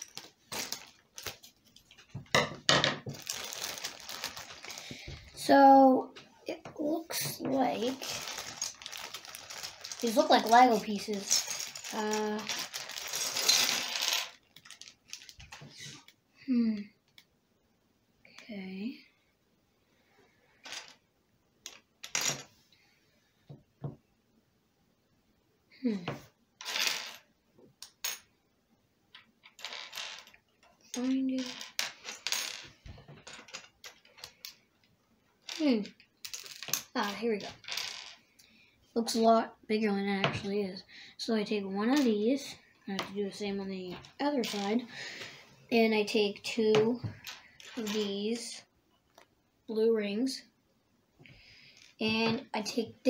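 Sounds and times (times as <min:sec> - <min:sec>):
plastic bag rustling: 0:00.0 - 0:02.2, 0:03.0 - 0:05.5, 0:07.1 - 0:16.0
plastic blocks clattering onto table: 0:00.0 - 0:05.2, 0:07.2 - 0:16.0, 0:29.4 - 0:34.6, 0:35.5 - 0:38.2
child vocal sounds: 0:10.0 - 0:12.7, 0:15.8 - 0:17.0, 0:25.7 - 0:26.2.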